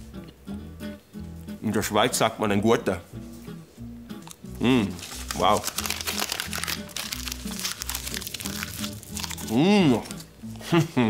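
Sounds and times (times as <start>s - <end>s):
background music: 0.0s - 11.0s
paper crinkling and tearing: 4.8s - 10.3s.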